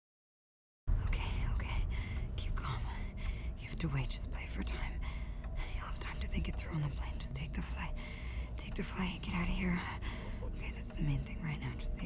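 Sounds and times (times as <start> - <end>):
steady low rumble: 0.9 - 12.0.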